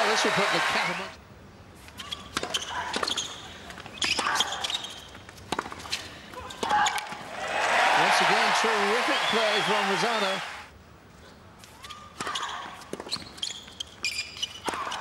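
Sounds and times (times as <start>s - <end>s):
crowd applauding and cheering: 0.0s - 1.1s, 7.3s - 10.7s.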